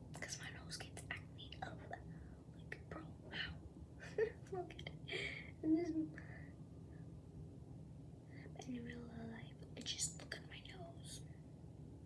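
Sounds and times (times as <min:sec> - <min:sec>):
girl whispering: 0:02.6 - 0:03.6, 0:04.6 - 0:06.5, 0:08.4 - 0:11.2.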